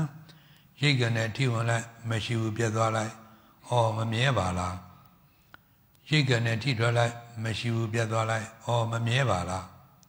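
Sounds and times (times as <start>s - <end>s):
man chanting: 0.0s - 5.0s, 6.0s - 9.8s.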